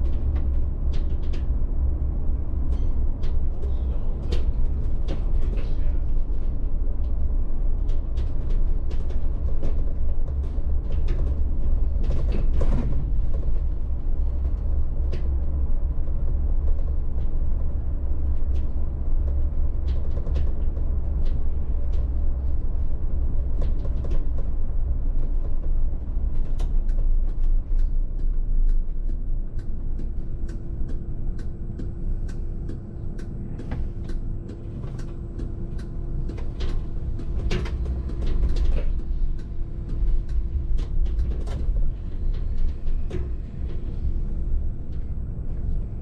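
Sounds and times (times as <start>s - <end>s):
bus road rumble: 0.0s - 46.0s
steady hum: 0.0s - 46.0s.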